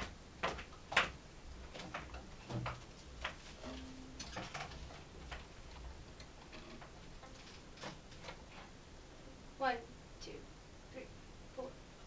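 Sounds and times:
small clicks and knocks: 0:00.0 - 0:08.7.

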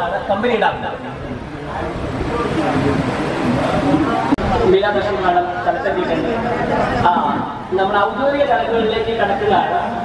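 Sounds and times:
people talking over one another: 0:00.0 - 0:10.0.

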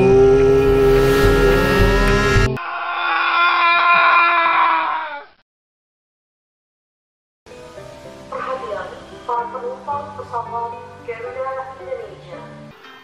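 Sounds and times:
muffled music: 0:00.0 - 0:02.6, 0:07.5 - 0:13.0.

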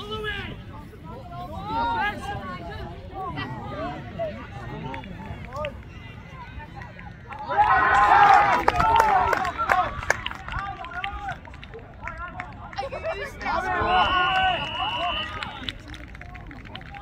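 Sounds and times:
crowd cheering and yelling: 0:00.0 - 0:17.0
spectators shouting: 0:07.3 - 0:10.1, 0:12.8 - 0:15.7.

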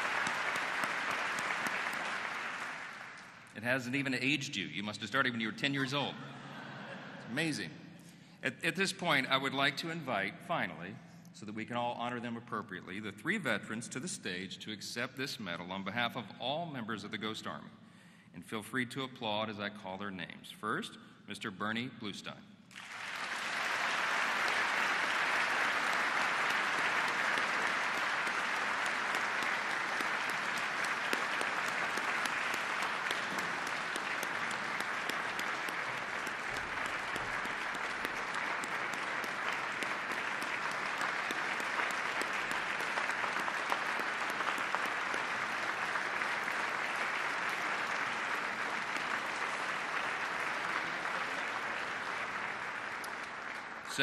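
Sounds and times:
audience applauding: 0:00.0 - 0:03.6, 0:22.7 - 0:54.0.

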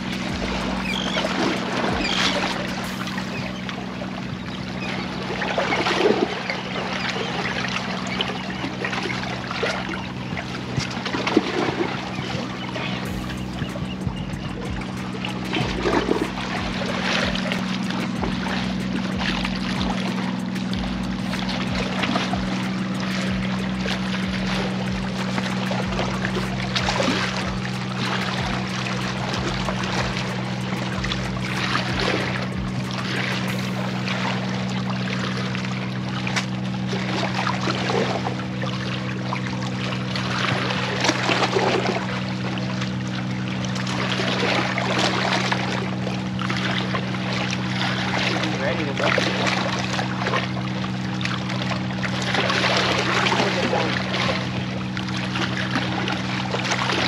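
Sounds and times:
steady low hum: 0:00.0 - 0:57.0
water splashing against rocks: 0:05.2 - 0:57.0.

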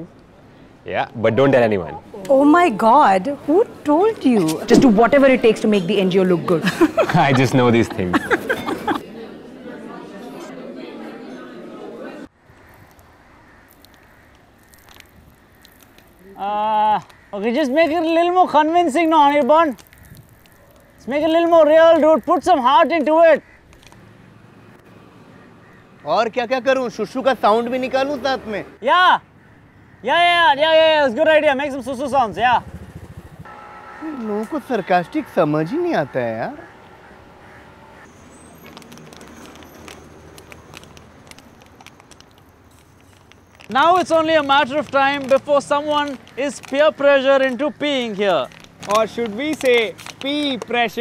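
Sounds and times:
steady low hum: 0:32.2 - 0:38.1.

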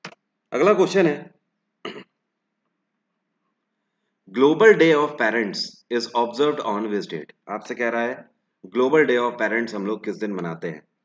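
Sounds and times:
man speaking: 0:00.6 - 0:01.3, 0:04.3 - 0:10.9
man clearing throat: 0:01.8 - 0:02.2.

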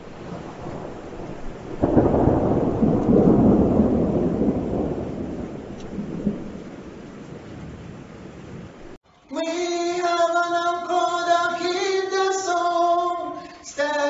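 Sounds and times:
rolling thunder: 0:00.0 - 0:09.0
rain-like hiss: 0:00.0 - 0:14.0.

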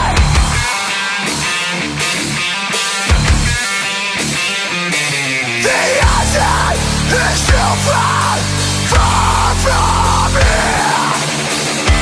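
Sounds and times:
electric guitar riff: 0:00.0 - 0:12.0.

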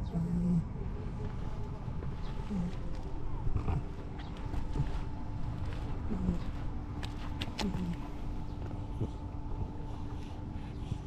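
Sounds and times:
cat purring: 0:02.3 - 0:05.1.

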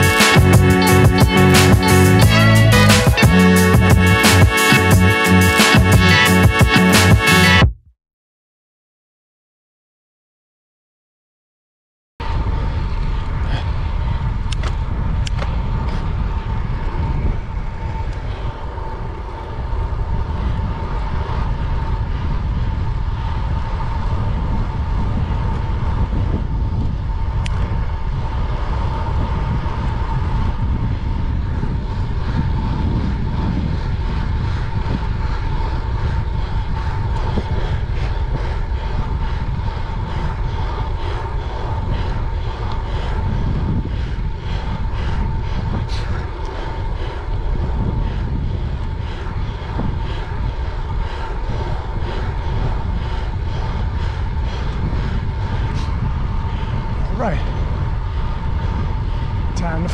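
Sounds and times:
road and tyre noise: 0:00.0 - 0:07.7, 0:12.2 - 0:59.9
wind rushing over microphone: 0:00.0 - 0:07.7, 0:12.2 - 0:59.9
thin constant whine: 0:12.2 - 0:59.9.

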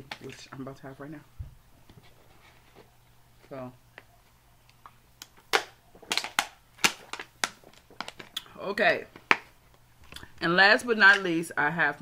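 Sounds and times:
plastic bottle crackling: 0:04.7 - 0:10.3.

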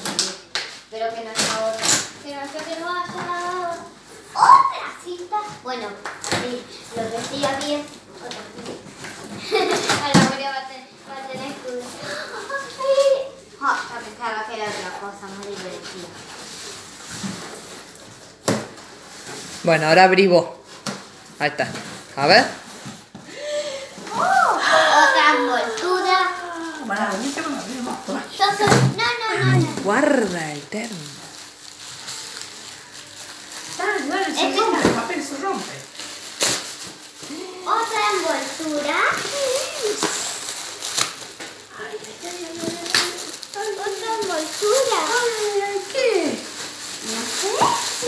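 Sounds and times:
wrapping paper rustling and crinkling: 0:00.0 - 0:48.0
paper ripping: 0:25.2 - 0:48.0.

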